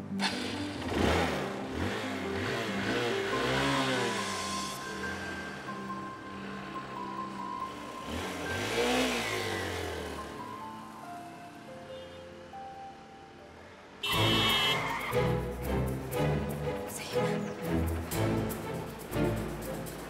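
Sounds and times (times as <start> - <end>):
dramatic string music: 0.0 - 10.5, 14.0 - 20.0
soft background music: 0.0 - 20.0
motorcycle engine passing: 0.1 - 11.0.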